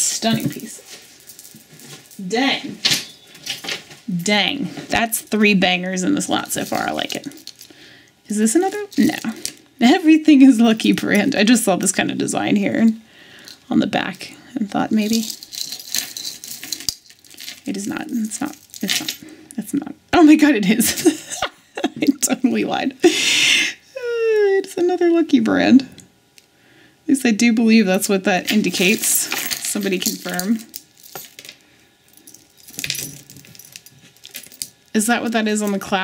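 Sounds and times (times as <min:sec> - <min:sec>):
metal chains jingling: 0:00.1 - 0:03.6, 0:06.2 - 0:07.7, 0:08.4 - 0:09.6, 0:14.9 - 0:19.3, 0:28.5 - 0:35.9.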